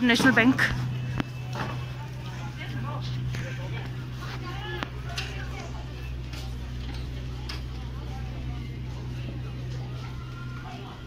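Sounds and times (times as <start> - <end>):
low rumble of street noise: 0.0 - 11.0.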